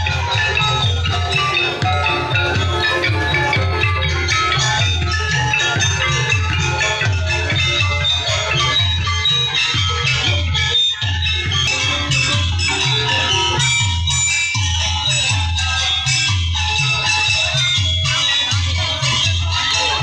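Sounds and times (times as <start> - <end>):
ringing pitched melody notes: 0.0 - 16.1
music with steady beat: 0.0 - 20.0.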